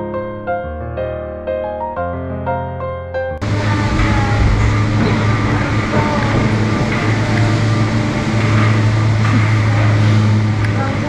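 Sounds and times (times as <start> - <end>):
constant rushing noise: 3.4 - 11.0
faint voices: 3.4 - 11.0
low machine hum: 3.4 - 11.0.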